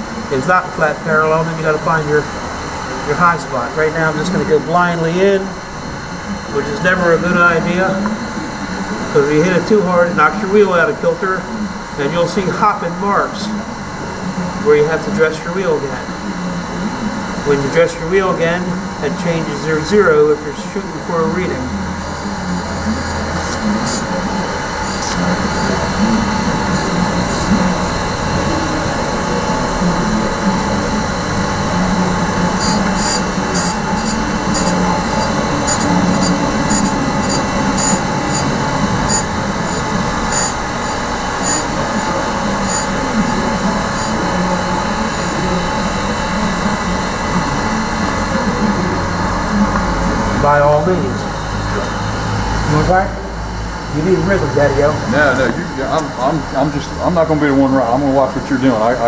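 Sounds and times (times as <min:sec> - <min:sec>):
surface grinder whirring: 0:15.7 - 0:57.9
sharp grinding hisses: 0:39.1 - 0:43.0.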